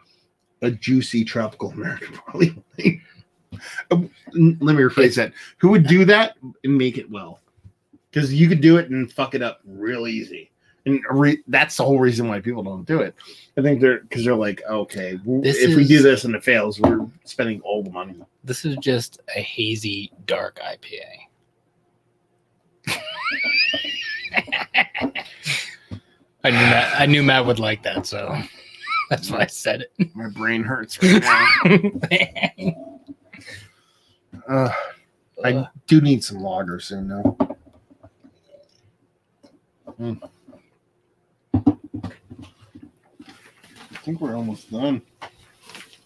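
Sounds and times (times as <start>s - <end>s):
man's voice rising in pitch: 13.8s - 16.8s, 29.1s - 31.8s, 34.5s - 35.7s
man's appreciative mm: 34.4s - 35.0s.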